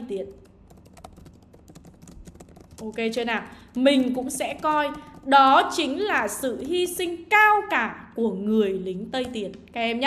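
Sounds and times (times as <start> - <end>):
computer keyboard typing: 0.0 - 7.0.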